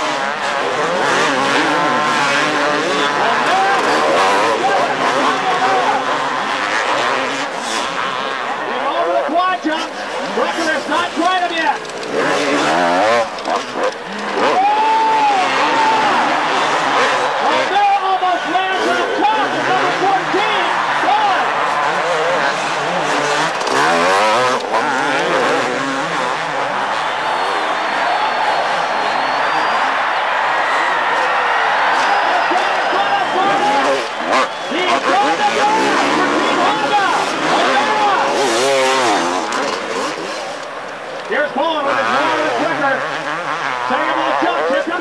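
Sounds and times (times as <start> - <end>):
motocross bike engines revving: 0.0 - 45.0.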